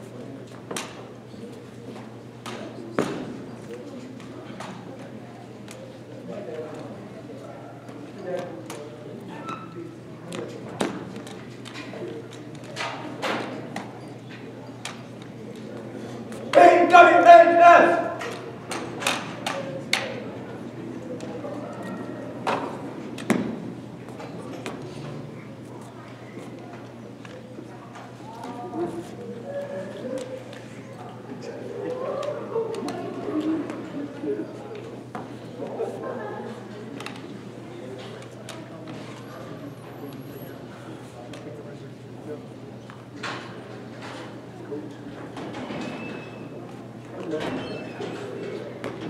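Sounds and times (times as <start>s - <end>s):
murmur of voices: 0.0s - 49.0s.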